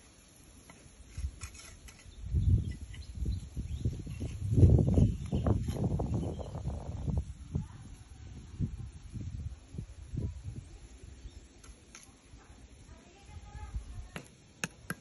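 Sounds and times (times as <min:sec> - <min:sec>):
wind buffeting microphone: 0:01.2 - 0:11.4.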